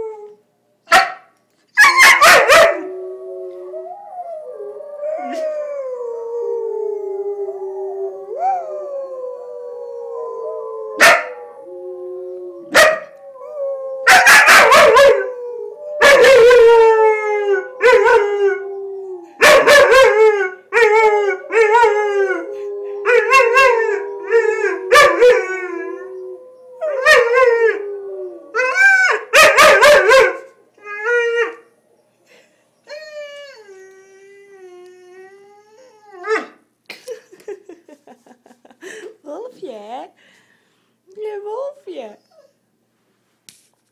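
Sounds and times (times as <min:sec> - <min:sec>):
long steady howls: 0:01.9 - 0:36.6.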